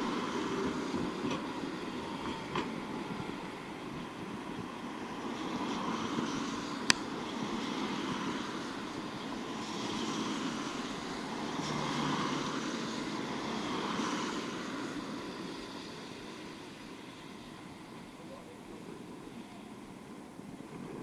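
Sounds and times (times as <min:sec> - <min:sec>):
cars passing on wet road: 0:00.0 - 0:21.0.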